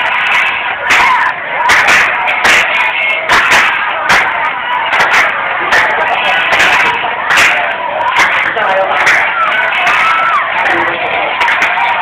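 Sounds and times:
hand claps: 0.0 - 12.0
steady background din: 0.0 - 12.0.

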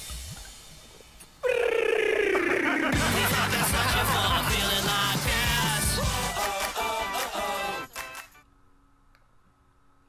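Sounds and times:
commercial music: 2.8 - 8.4.

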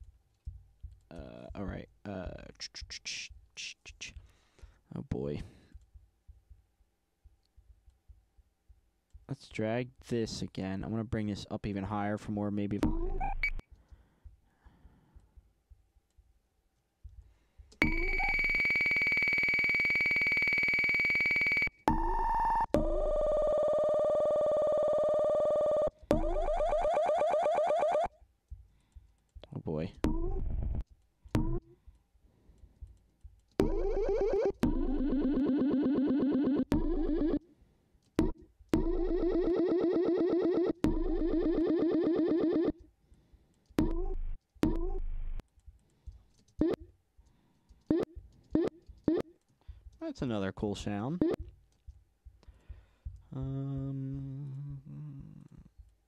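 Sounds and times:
electronic beeps at several pitches: 12.9 - 13.6, 17.8 - 23.5, 33.6 - 37.4, 38.2 - 42.7
blips with upward pitch swoop: 17.8 - 23.4, 31.4 - 31.6, 33.6 - 37.4, 38.2 - 42.8
buzzy repeating tones: 17.8 - 23.9, 26.1 - 27.0, 33.6 - 37.4, 38.2 - 42.7.

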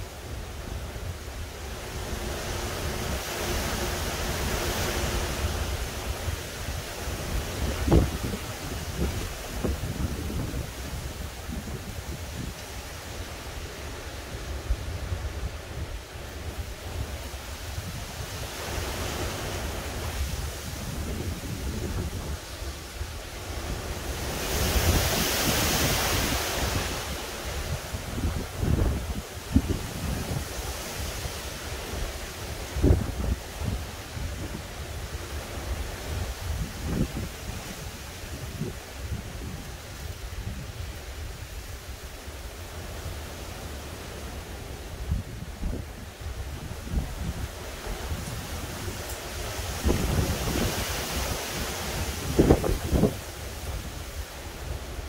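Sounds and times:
wind buffeting microphone: 0.0 - 55.0
wind gusting through trees: 0.0 - 55.0.

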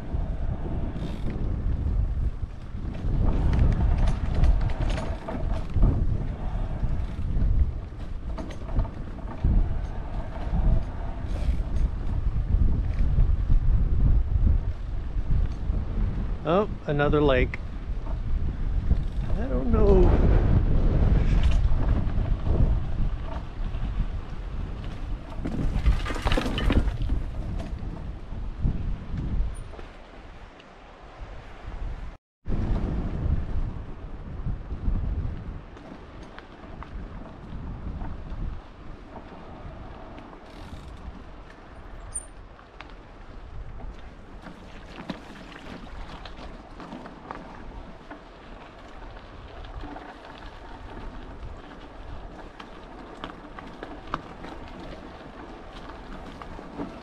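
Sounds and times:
rumbling on gravel track: 0.0 - 30.5, 32.5 - 57.0
wind buffeting microphone: 0.0 - 57.0.

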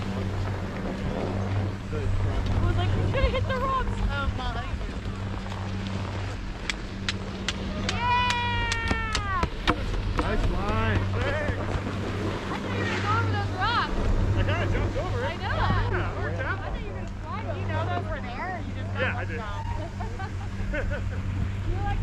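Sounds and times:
steady low hum: 0.0 - 22.0
long drawn-out yell: 7.8 - 9.5
people calling out: 7.8 - 9.6.

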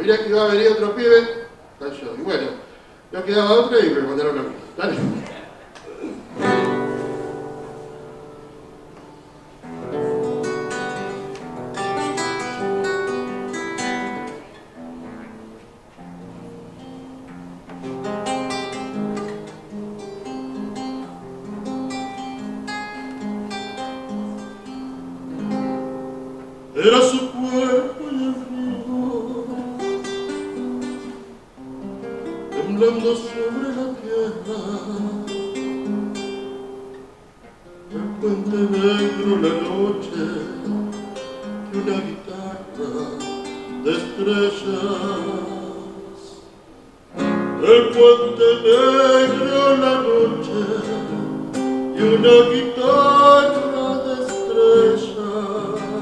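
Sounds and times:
acoustic guitar solo: 4.2 - 56.0.

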